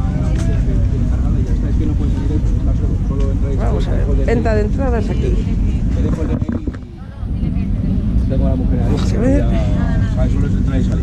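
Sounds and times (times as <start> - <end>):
faint voices talking: 0.0 - 11.0
low rumble: 0.0 - 11.0.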